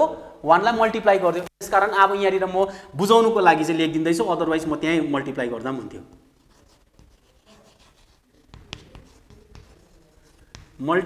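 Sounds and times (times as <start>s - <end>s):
faint scratchy writing: 6.1s - 10.9s.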